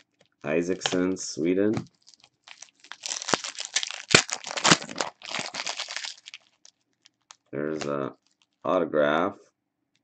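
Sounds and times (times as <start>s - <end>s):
foil wrapper crinkling and tearing: 0.0s - 1.2s, 1.8s - 8.6s.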